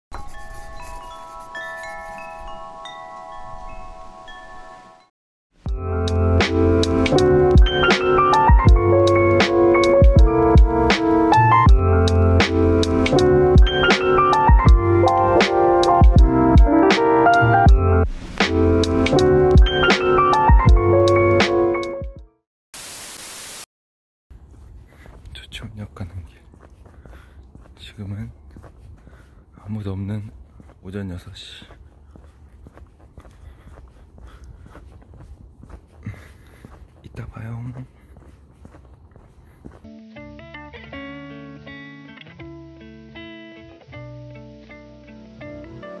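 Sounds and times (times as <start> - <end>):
wind chimes ringing: 0.2 - 5.1
background music: 5.7 - 22.3, 39.9 - 46.0
static hiss transition effect: 22.8 - 23.7.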